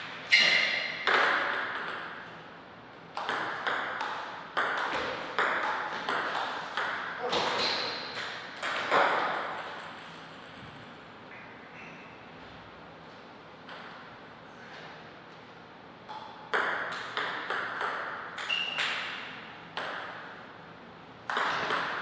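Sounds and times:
table tennis ball hits: 0.3 - 2.3, 3.1 - 10.6, 16.1 - 20.3, 21.3 - 22.0.

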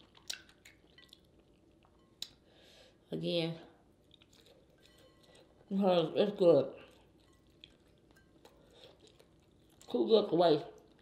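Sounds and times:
quiet chewing: 0.0 - 2.5, 3.9 - 5.7, 6.7 - 10.0, 10.7 - 11.0.

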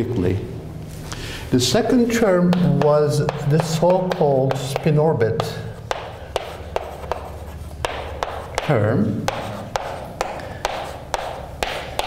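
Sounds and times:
chalk scratching on blackboard: 2.5 - 12.0
chalk tapping on blackboard: 2.5 - 12.0.

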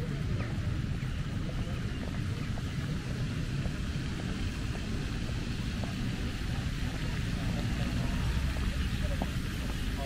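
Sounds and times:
faint voices: 0.0 - 10.0
fountain water spraying: 0.0 - 10.0.

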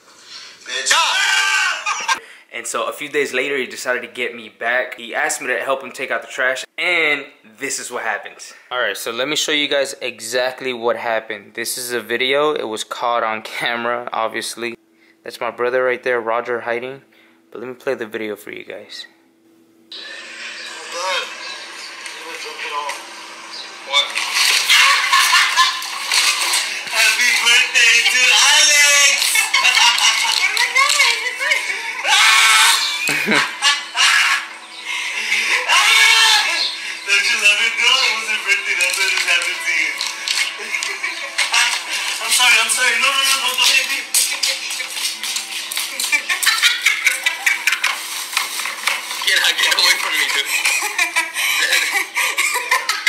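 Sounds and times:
people shouting: 0.7 - 2.2, 23.9 - 26.0, 26.6 - 33.2, 35.5 - 36.7
outdoor commotion through phone speaker: 20.0 - 32.8, 35.2 - 46.4, 47.8 - 50.9.

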